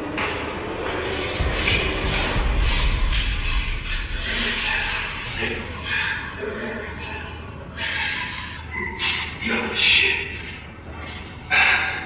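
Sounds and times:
low rumble: 0:00.0 - 0:07.0
background music: 0:00.0 - 0:07.7
muffled indistinct voices: 0:01.0 - 0:12.0.

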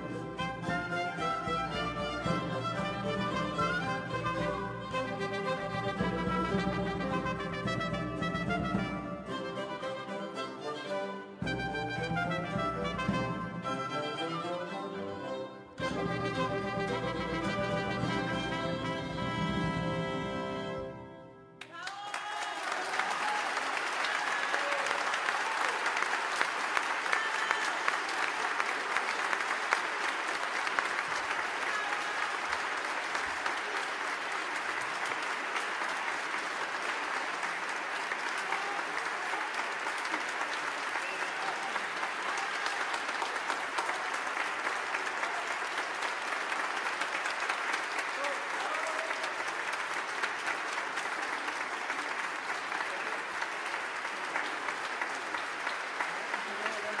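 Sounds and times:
audience applauding: 0:00.0 - 0:14.8, 0:15.8 - 0:57.0.

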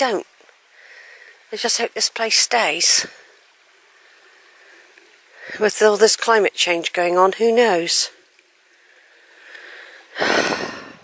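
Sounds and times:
stream running over stones: 0:00.0 - 0:11.0.

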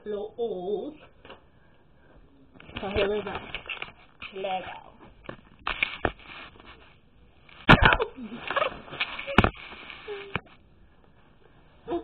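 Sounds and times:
girl speaking: 0:04.3 - 0:05.0
camera handling scuffle: 0:05.6 - 0:06.9.

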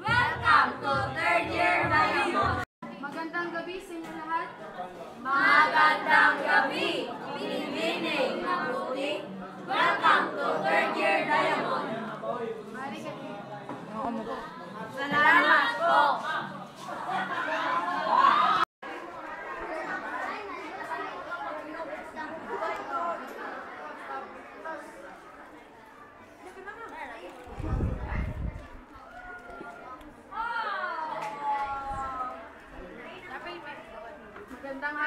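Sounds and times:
overlapping chatter: 0:00.0 - 0:35.0.

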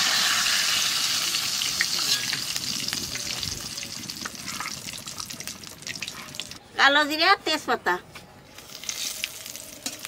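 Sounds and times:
spices sizzling in hot oil: 0:00.0 - 0:06.6, 0:08.6 - 0:10.0.

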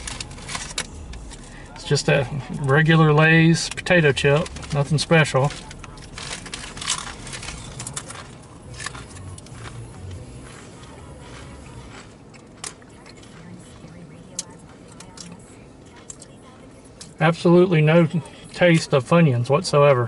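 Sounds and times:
chewing potato chips: 0:00.0 - 0:17.2
low hum: 0:00.0 - 0:20.0.

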